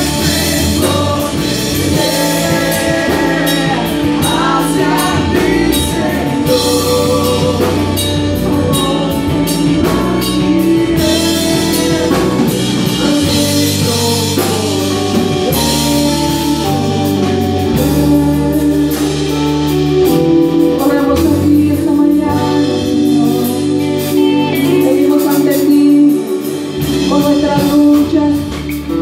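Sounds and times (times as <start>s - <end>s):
drum kit: 0.0s - 29.0s
electric guitars: 0.0s - 29.0s
lead vocal singing: 0.0s - 29.0s
live worship band playing: 0.0s - 29.0s.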